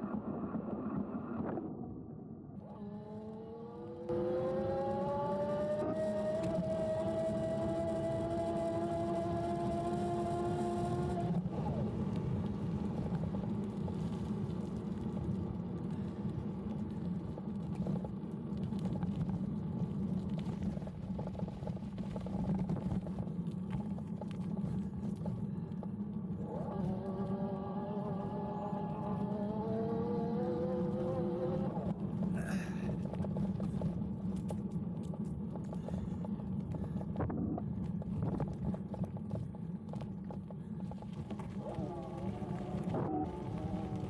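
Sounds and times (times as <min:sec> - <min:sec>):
wind and tyres rumbling: 0:00.0 - 0:44.0.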